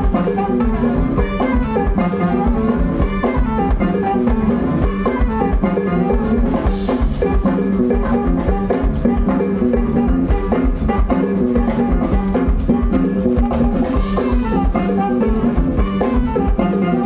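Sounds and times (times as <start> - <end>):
congas: 0.0 - 17.0
electric bass: 0.0 - 17.0
keyboard: 0.0 - 17.0
saxophone: 0.0 - 17.0.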